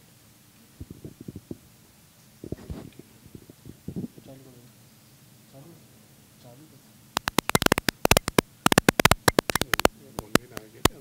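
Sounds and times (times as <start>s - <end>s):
microphone handling thumps and rubbing: 0.8s - 1.7s, 2.4s - 4.4s.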